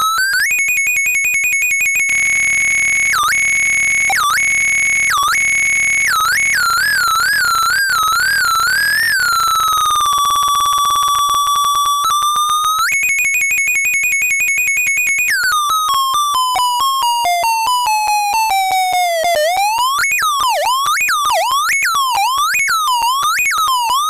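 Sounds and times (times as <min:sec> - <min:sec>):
buzzy electronic tone: 0:02.1 - 0:10.3.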